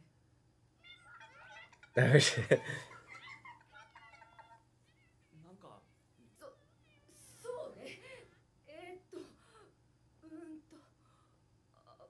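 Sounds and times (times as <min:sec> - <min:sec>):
faint high-pitched voices: 0:00.8 - 0:05.5.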